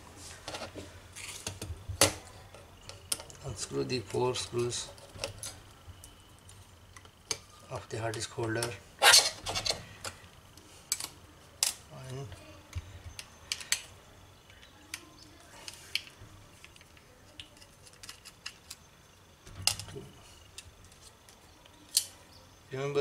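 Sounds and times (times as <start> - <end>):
small metal clicks and rattles: 14.5 - 18.8.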